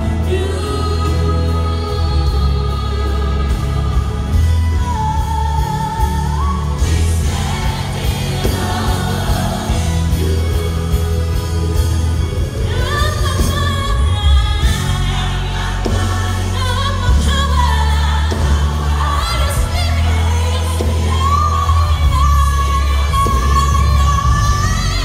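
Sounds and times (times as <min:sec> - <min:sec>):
band with heavy bass: 0:00.0 - 0:25.0
woman singing lead vocal: 0:00.0 - 0:25.0
choir singing: 0:05.6 - 0:25.0.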